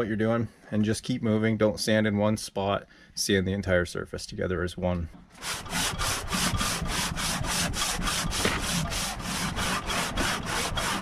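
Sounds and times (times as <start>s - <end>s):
metal rubbing on sanding discs: 5.4s - 11.0s.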